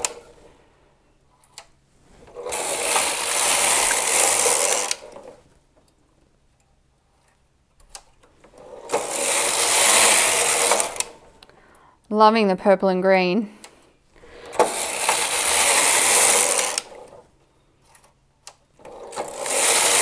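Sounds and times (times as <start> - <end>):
knitting machine carriage sliding: 0.0 - 0.5, 1.4 - 5.5, 7.1 - 11.3, 14.4 - 18.2, 18.8 - 20.0.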